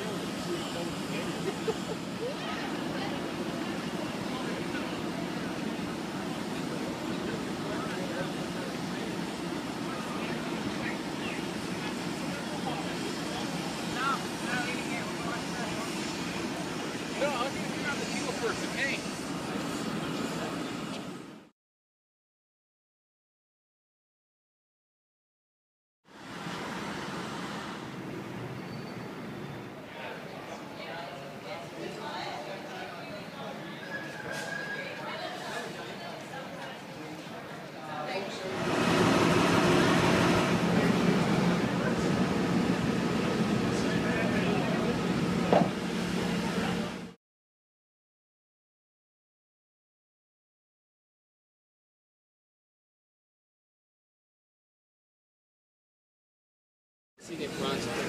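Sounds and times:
people talking: 0.0s - 21.0s, 29.8s - 47.2s, 57.2s - 58.0s
diesel locomotive idling: 0.0s - 21.3s, 38.5s - 47.2s.

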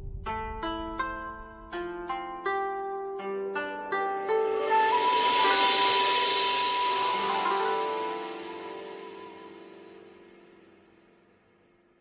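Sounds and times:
breathy bamboo flute note: 4.4s - 10.7s.

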